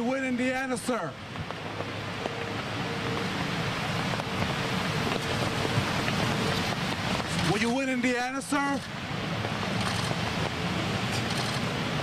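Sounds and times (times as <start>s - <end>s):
wind hiss on microphone: 0.0s - 12.0s.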